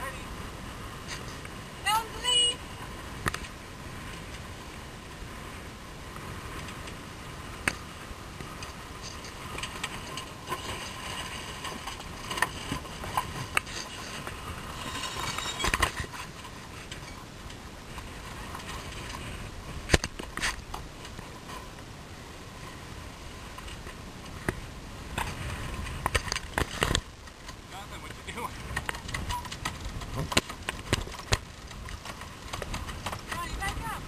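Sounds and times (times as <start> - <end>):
rush of wind and water: 0.0 - 34.0.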